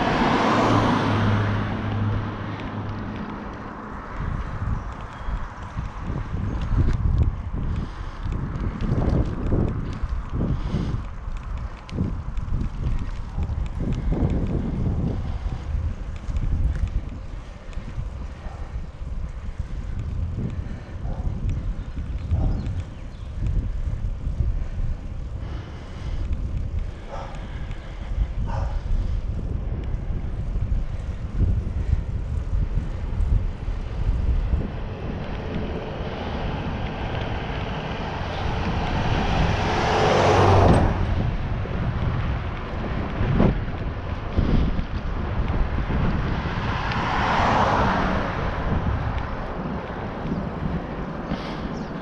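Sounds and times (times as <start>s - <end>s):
wind buffeting microphone: 0.0s - 52.0s
wind rushes: 0.0s - 52.0s.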